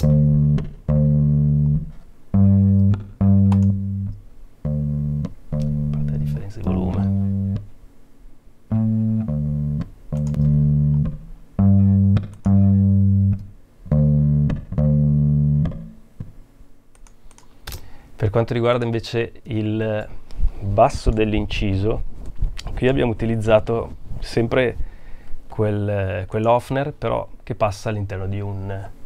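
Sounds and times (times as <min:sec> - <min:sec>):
distorted electric bass riff: 0:00.0 - 0:07.7, 0:08.7 - 0:16.3.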